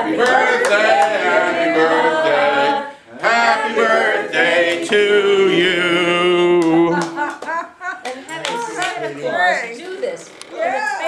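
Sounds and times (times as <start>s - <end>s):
small group clapping: 0.0s - 1.4s, 6.5s - 9.2s
voices: 5.9s - 11.0s.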